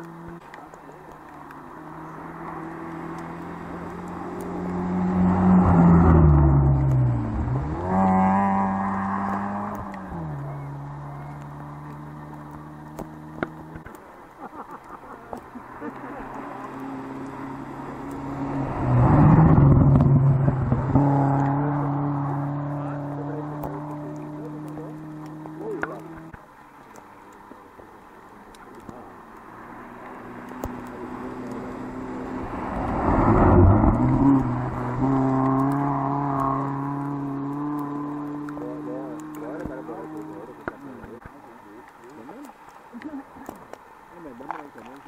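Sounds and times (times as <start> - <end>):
tyres rushing through snow: 0.0 - 45.0
rally car engine passing: 1.4 - 14.0, 15.2 - 26.4, 28.8 - 42.4.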